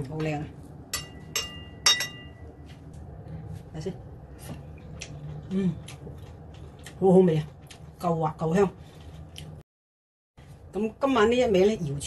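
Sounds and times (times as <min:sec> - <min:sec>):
metal spoon clinking on plate: 0:01.0 - 0:02.4.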